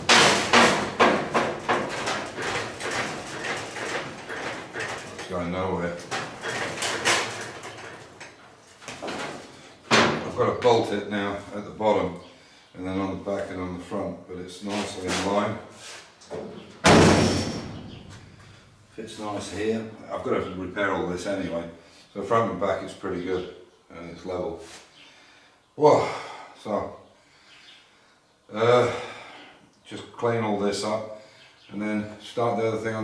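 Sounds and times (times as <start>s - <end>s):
steel running board knocking: 0.0s - 5.2s
metal truck door slamming: 0.0s - 5.3s, 9.0s - 10.4s, 16.8s - 18.3s.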